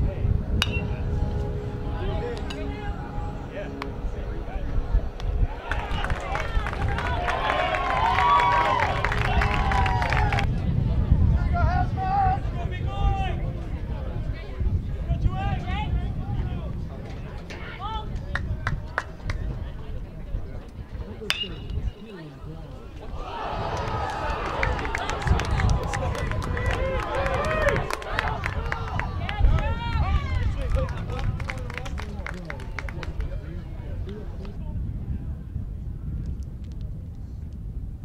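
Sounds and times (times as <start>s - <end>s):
metal bat hitting ball: 0.6s - 1.0s, 21.3s - 22.0s
spectators shouting and cheering: 5.1s - 13.4s, 23.0s - 31.1s
people clapping: 5.6s - 10.5s, 18.1s - 19.4s, 23.7s - 33.4s.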